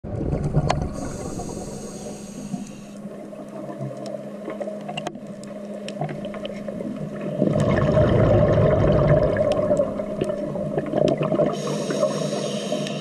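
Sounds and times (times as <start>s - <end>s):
exhaled bubbles underwater: 0.0s - 13.0s
breath hissing through regulator: 0.9s - 3.0s, 11.4s - 13.0s
faint clicks: 12.7s - 13.0s.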